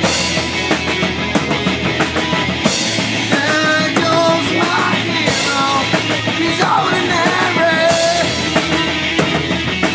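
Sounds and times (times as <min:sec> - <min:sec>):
bass: 0:00.0 - 0:09.9
driving drum kit: 0:00.0 - 0:09.9
electric guitars: 0:00.0 - 0:09.9.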